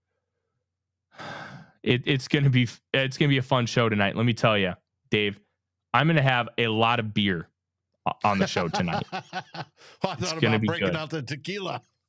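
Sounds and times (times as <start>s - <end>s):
man breathing close to microphone: 1.1s - 1.8s, 9.8s - 10.0s.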